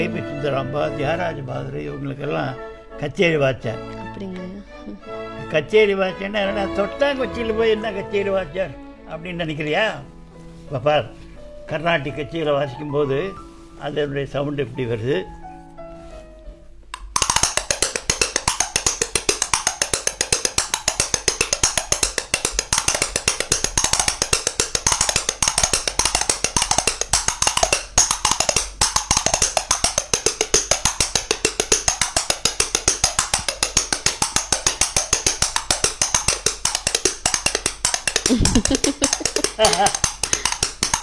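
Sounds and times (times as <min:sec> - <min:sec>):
fast percussion strikes: 0:17.0 - 0:41.0.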